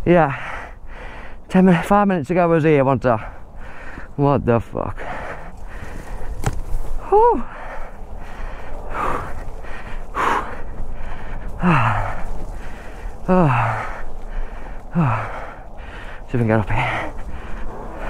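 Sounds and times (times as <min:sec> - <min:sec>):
man breathing hard: 0:00.2 - 0:01.8, 0:03.2 - 0:04.2, 0:04.9 - 0:18.0.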